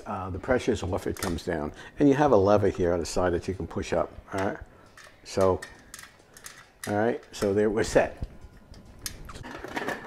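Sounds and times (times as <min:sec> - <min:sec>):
metallic clicks and scrapes: 0:04.8 - 0:07.6.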